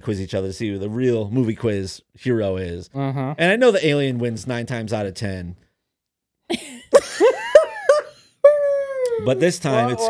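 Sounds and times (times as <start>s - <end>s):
child wailing: 8.5s - 10.0s.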